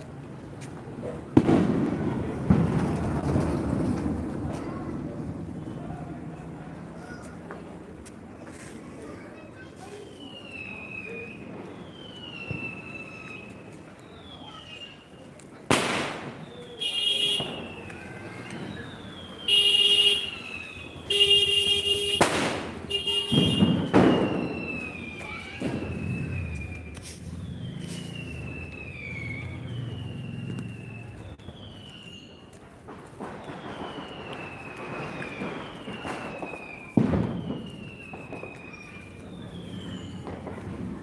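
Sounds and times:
firecracker bangs: 0.9s - 6.6s, 15.6s - 41.0s
whistling hissing firework bursts: 9.5s - 41.0s
high falling whistle: 23.7s - 32.5s, 33.4s - 40.2s.

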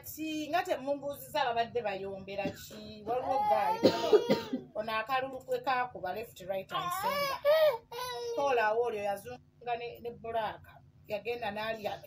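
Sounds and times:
woman speaking: 0.0s - 7.4s, 8.3s - 12.0s.

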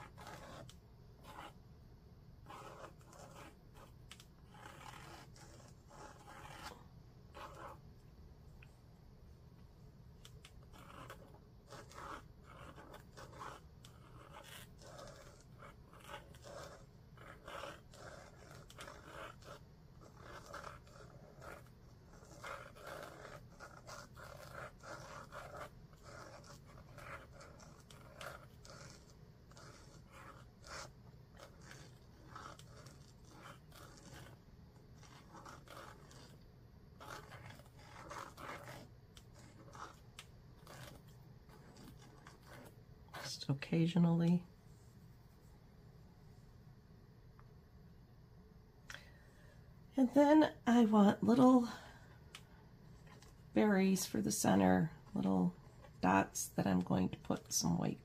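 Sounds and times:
pen scratching on paper: 0.0s - 1.8s, 2.4s - 8.0s, 9.7s - 44.9s, 50.0s - 58.0s.

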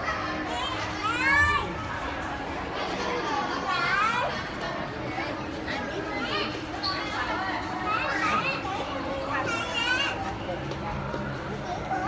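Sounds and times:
children talking and calling out: 0.0s - 12.0s
shopper chatter: 0.0s - 12.0s.

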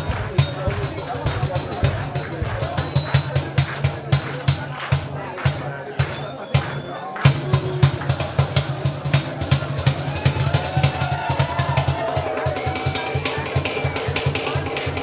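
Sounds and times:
banjo: 0.0s - 10.8s, 11.4s - 15.0s
hand drums: 0.0s - 15.0s.

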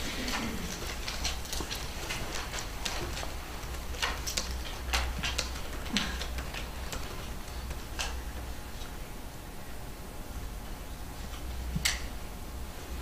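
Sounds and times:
paper handling: 0.0s - 9.0s
pens writing on paper: 0.6s - 9.0s.

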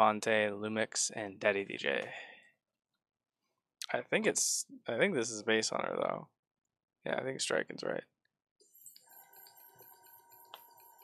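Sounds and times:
faint bell-like background music: 8.7s - 11.0s.

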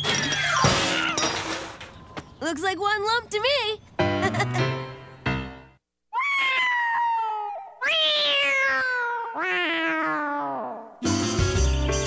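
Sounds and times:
cartoon cat yowling: 6.1s - 11.0s.

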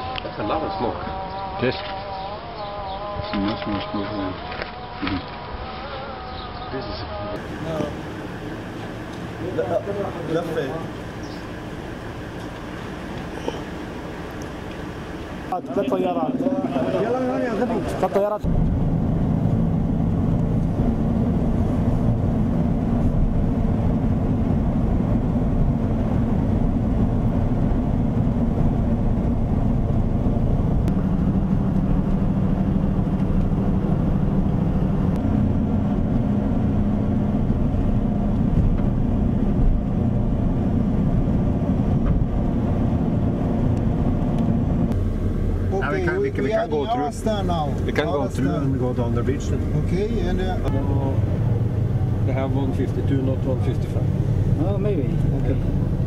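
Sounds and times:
vehicle engine: 0.0s - 56.0s
road noise inside car: 6.4s - 56.0s.

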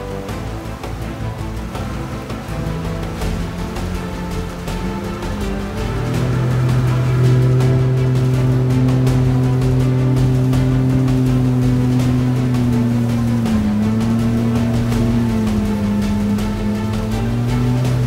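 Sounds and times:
boat engine at high revs: 0.0s - 18.0s
music: 0.0s - 18.0s.

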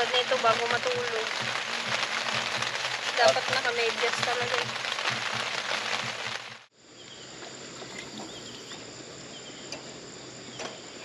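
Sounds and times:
rain hissing on a tent: 0.0s - 11.0s
faint chirping: 6.8s - 11.0s.

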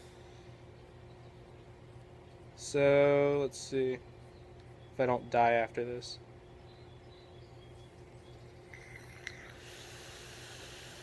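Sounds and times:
faint vape hissing: 8.7s - 11.0s.

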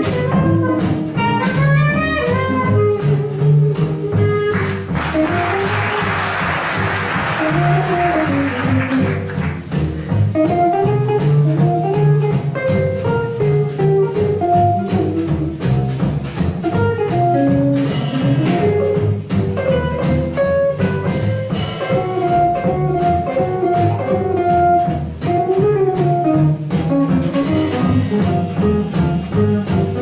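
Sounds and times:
guitar lead: 0.0s - 6.1s, 7.2s - 30.0s
clarinet melody: 0.0s - 6.2s, 16.7s - 30.0s
jazz band playing: 0.0s - 30.0s
audience applauding: 4.5s - 9.8s.

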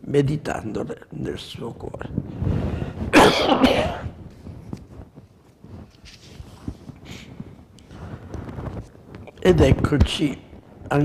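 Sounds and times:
man coughing: 3.1s - 4.2s.

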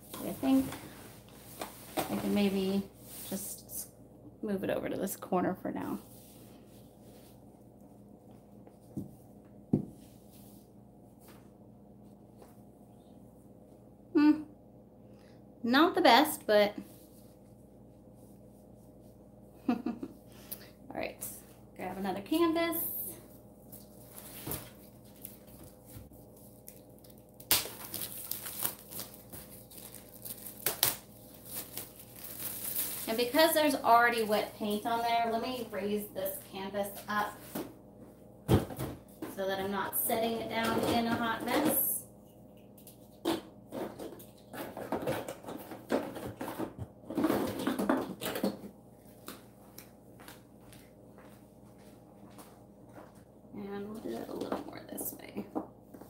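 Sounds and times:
canvas rustling and crinkling: 27.8s - 33.7s.

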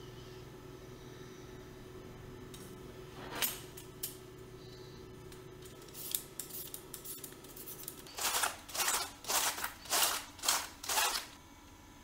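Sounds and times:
cabbage shredder rasping strokes: 7.6s - 11.4s.

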